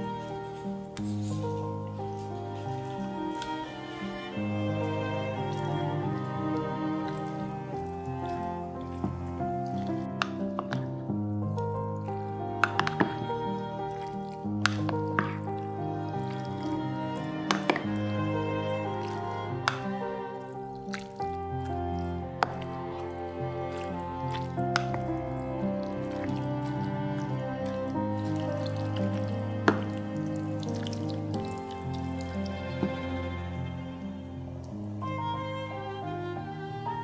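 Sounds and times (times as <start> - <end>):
wooden spoon stirring pasta: 0.0 - 3.7, 4.4 - 33.1
background music with held tones: 0.0 - 37.0.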